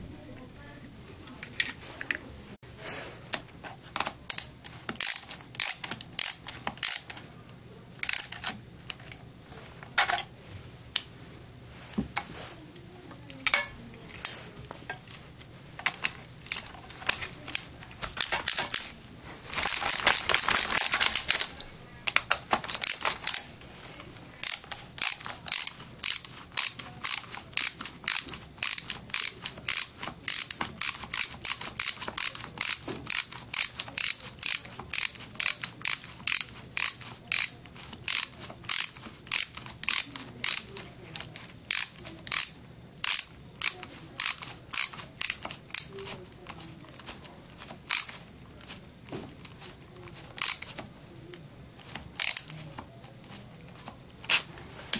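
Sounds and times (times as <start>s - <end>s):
screwdriver ratchet clicking: 4.0s - 7.2s, 8.0s - 9.1s, 15.8s - 18.9s, 19.5s - 23.5s, 24.4s - 45.9s, 46.5s - 48.8s, 49.4s - 50.8s, 51.8s - 52.5s.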